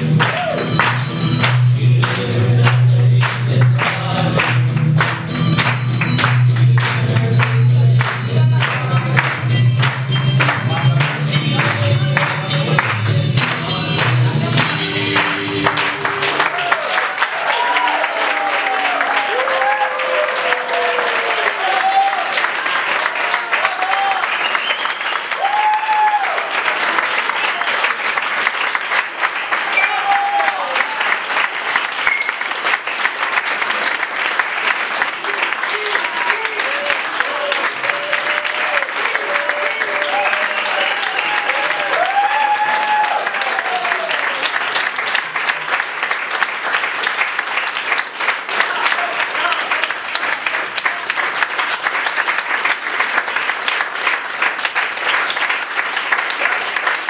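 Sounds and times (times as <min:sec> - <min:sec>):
crowd applauding: 0:00.0 - 0:57.0.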